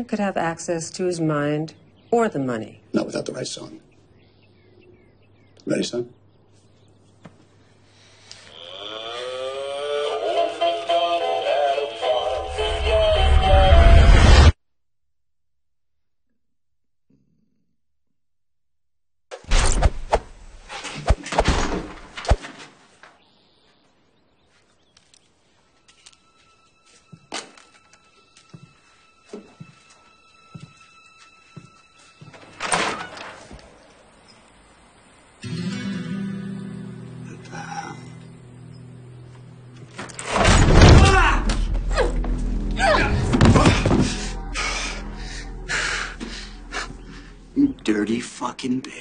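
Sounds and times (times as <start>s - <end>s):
low background music: 25.8s - 32.9s, 41.0s - 48.6s
loud crash with bang: 40.3s - 41.7s, 43.1s - 44.4s
faint high sustained tone: 44.0s - 47.9s.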